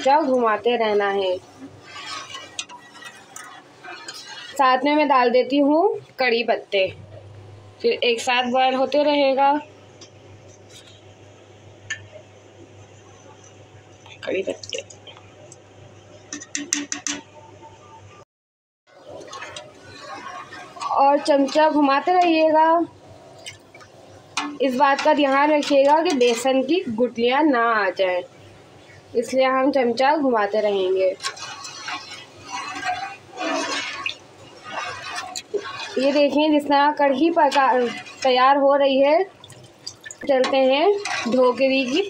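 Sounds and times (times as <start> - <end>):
liquid sloshing and swishing: 0.0 - 5.6, 18.9 - 42.0
spoon stirring liquid in a pot: 0.0 - 5.6, 18.9 - 42.0.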